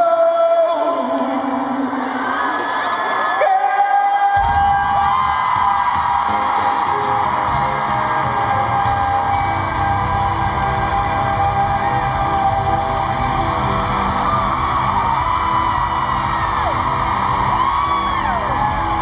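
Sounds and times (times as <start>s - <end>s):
crowd screaming and whooping: 1.6s - 19.0s
live pop band music: 3.4s - 19.0s
high screams: 4.6s - 19.0s.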